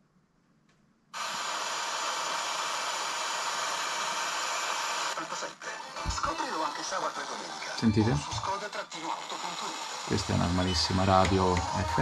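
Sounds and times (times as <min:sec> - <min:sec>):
radio static hiss: 0:04.7 - 0:12.0.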